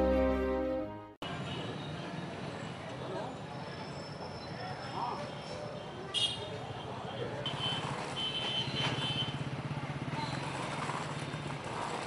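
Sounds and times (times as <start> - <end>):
small engine running: 9.6 - 12.0.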